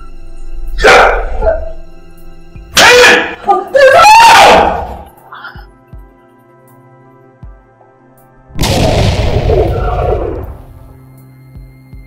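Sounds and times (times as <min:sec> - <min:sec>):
background music drone: 0:00.0 - 0:12.0
harsh cry: 0:00.8 - 0:01.6, 0:02.8 - 0:05.1.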